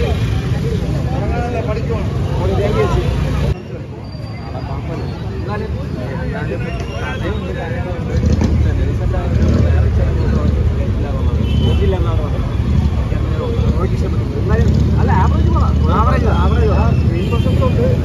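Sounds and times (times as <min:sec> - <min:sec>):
men talking: 0:00.0 - 0:18.0.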